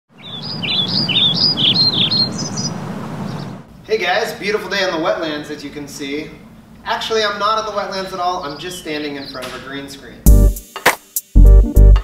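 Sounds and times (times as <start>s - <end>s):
songbird chirping: 0.1s - 3.7s, 7.2s - 10.1s
low outdoor background noise: 0.1s - 10.3s.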